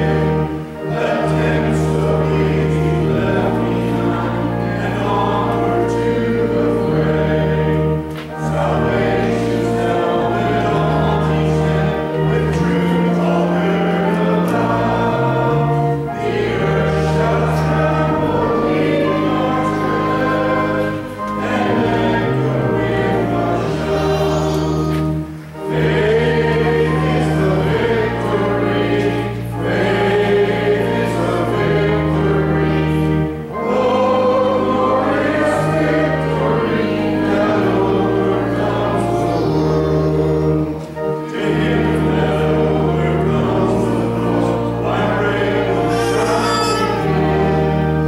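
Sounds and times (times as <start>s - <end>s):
congregation singing a hymn: 0.0s - 48.0s
organ chords: 0.0s - 48.0s.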